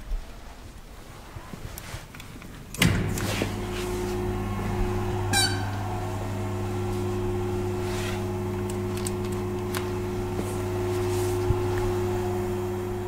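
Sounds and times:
lift pump motor humming: 0:02.7 - 0:13.0.

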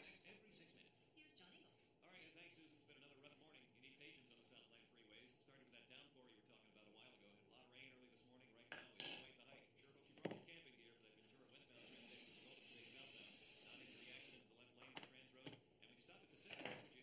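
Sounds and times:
aerosol spray can hissing: 0:11.8 - 0:14.4.

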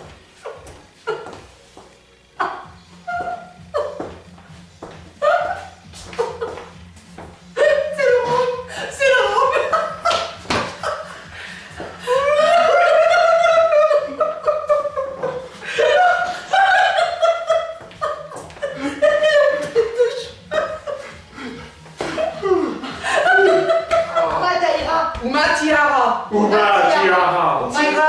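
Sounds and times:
people laughing and giggling: 0:00.4 - 0:01.8, 0:02.4 - 0:25.0
people talking: 0:07.6 - 0:10.0, 0:22.4 - 0:28.0.

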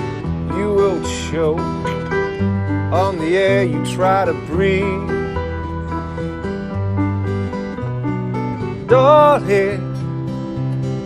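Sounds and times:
acoustic guitar strumming: 0:00.0 - 0:11.0
keyboard: 0:00.0 - 0:11.0
man singing: 0:00.2 - 0:05.7, 0:08.8 - 0:10.2.

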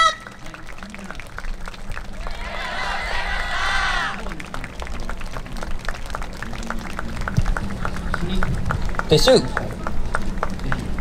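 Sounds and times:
audience applause: 0:00.0 - 0:11.0
murmur of crowd voices: 0:00.0 - 0:11.0.

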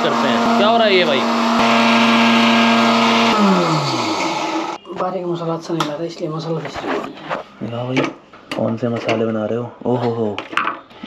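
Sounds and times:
mixer grinder motor running: 0:00.0 - 0:04.8.

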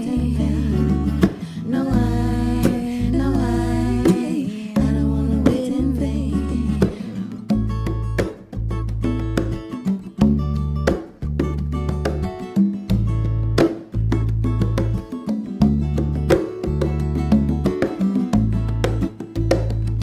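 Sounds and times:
woman singing: 0:00.0 - 0:07.6
electric bass: 0:00.0 - 0:20.0
hand drum strokes: 0:00.0 - 0:20.0
strummed acoustic guitar: 0:00.0 - 0:20.0.

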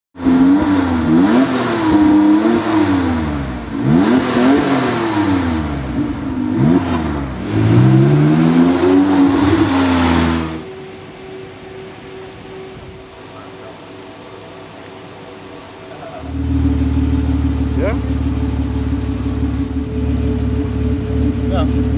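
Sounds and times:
engine revving hard: 0:00.2 - 0:10.7.

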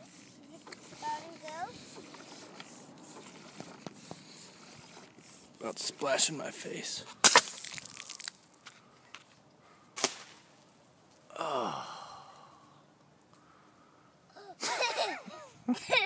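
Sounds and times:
rush of spraying water and air: 0:00.0 - 0:05.9
water rocket loud pop: 0:07.2 - 0:08.2, 0:10.0 - 0:10.5
person calling out long cry: 0:11.3 - 0:12.1.

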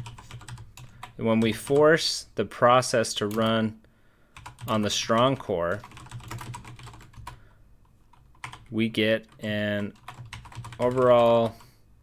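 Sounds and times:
keyboard keys clicking: 0:00.0 - 0:01.2, 0:04.4 - 0:07.4, 0:08.1 - 0:08.7, 0:10.0 - 0:11.6.

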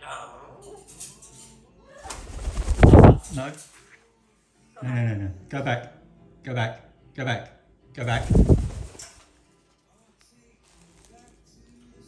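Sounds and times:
parrot wingbeats: 0:02.0 - 0:03.6, 0:08.0 - 0:09.2.

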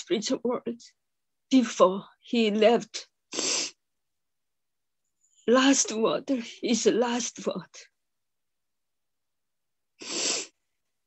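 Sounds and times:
woman's sharp breath: 0:10.0 - 0:10.6.

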